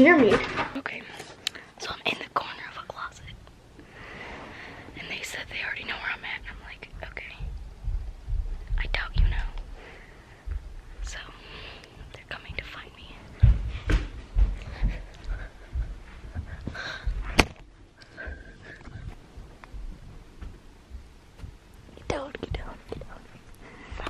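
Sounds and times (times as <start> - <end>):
girl whispering: 1.8 - 3.4, 8.8 - 9.6, 12.1 - 13.2, 22.0 - 23.3
camera handling bumps: 17.4 - 17.6.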